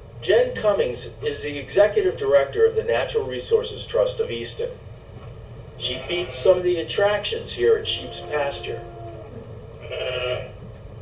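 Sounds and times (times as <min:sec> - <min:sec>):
sheep bleating through speakers: 0:05.8 - 0:10.6.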